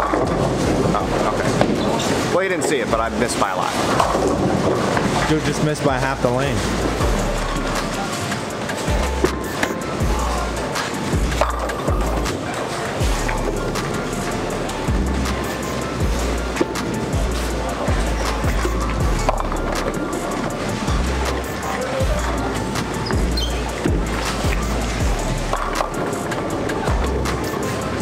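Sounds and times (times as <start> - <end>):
background music with bass line: 0.0 - 28.0
bowling balls rolling: 0.0 - 28.0.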